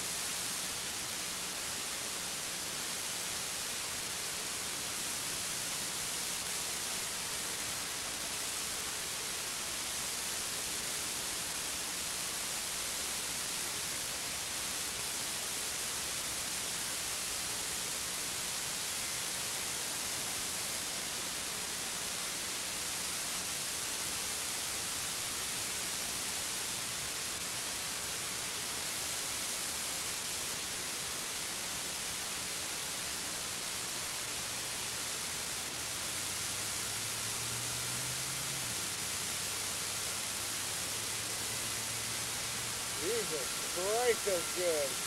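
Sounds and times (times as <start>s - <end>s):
steady hiss: 0.0s - 45.0s.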